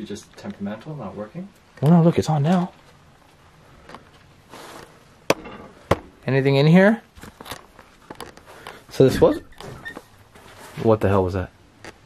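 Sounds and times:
soft rustle: 2.6 - 5.2, 6.3 - 12.0.

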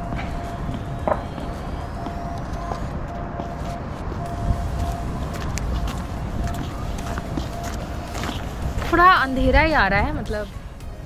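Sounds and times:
distant city traffic rumble: 0.0 - 11.0.

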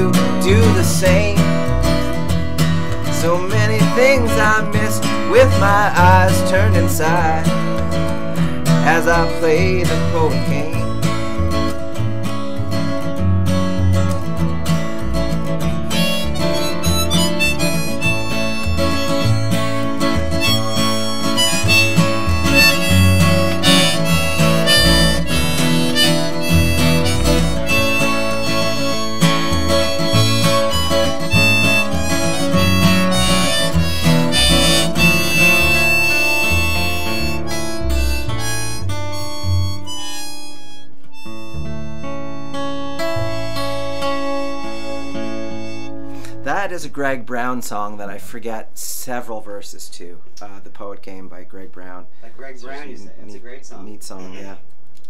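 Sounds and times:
harmonica solo: 0.0 - 46.5
plucked upright bass: 0.0 - 46.7
strummed acoustic guitar: 0.0 - 49.9.

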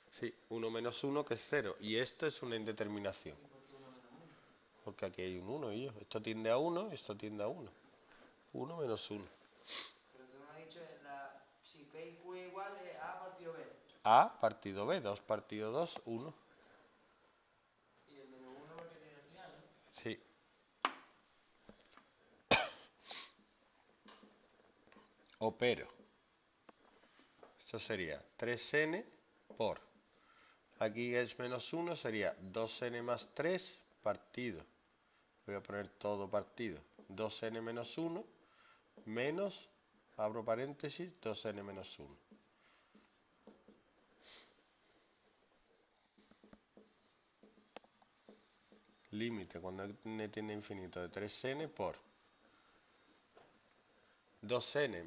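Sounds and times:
marker pen on whiteboard: 12.0 - 16.9, 18.0 - 55.0
person coughing: 22.5 - 23.4.

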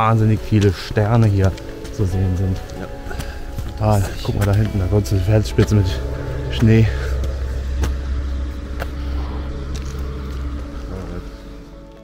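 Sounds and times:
steady low rumble: 2.8 - 12.0.

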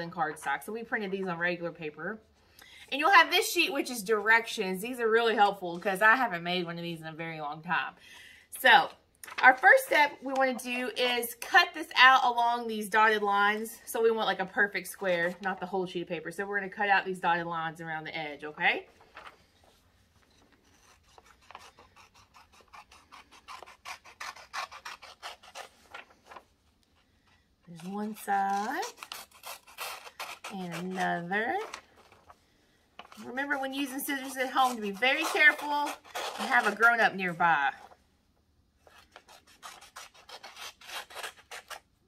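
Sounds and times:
scissors snipping paper: 20.6 - 26.4, 27.7 - 32.2, 33.0 - 37.0, 38.8 - 41.8.

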